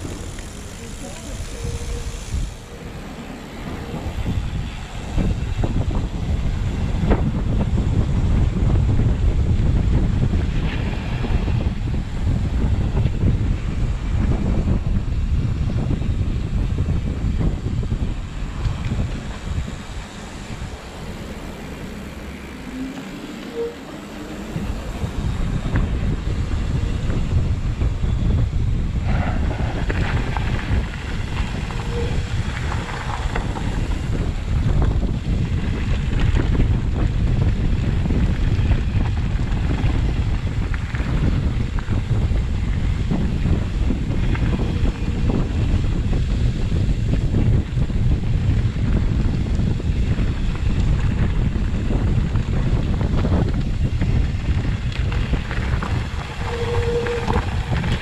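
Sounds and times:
mountain bike ride rumble: 0.0s - 58.0s
wind buffeting microphone: 0.0s - 58.0s.

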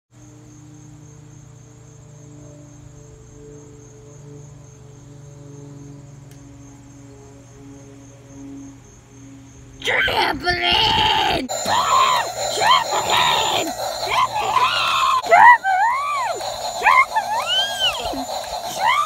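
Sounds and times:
steady low hum: 0.2s - 19.0s
faint high pulsing tone: 11.5s - 19.0s
sustained higher tones: 11.5s - 19.0s.

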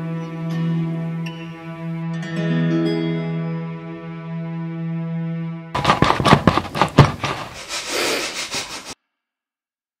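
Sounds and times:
handling knocks and rubbing: 5.8s - 7.7s.

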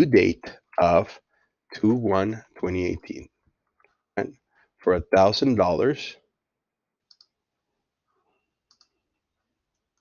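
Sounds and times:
computer mouse clicks: 7.0s - 7.4s, 8.6s - 9.1s, 9.7s - 10.0s.

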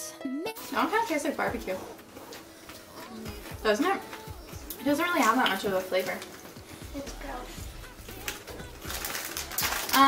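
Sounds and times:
foil chip bag crinkling: 7.9s - 10.0s.

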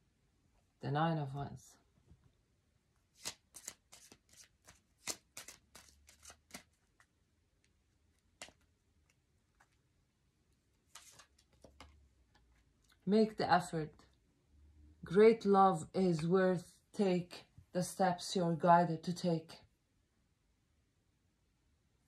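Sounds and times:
cards being shuffled: 3.1s - 9.8s, 10.8s - 12.6s.

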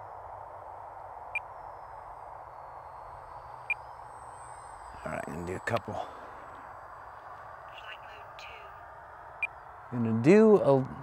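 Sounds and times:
model plane motor whine: 0.0s - 11.0s.

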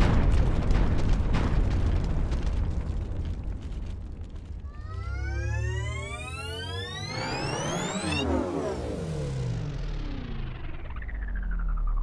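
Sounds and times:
crash: 0.0s - 11.7s
deep rumble: 0.0s - 12.0s
rising electronic sweep: 4.7s - 12.0s.

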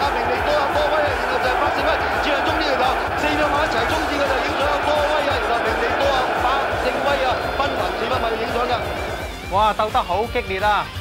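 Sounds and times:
horse race commentary: 0.0s - 10.9s
background music: 0.0s - 11.0s.

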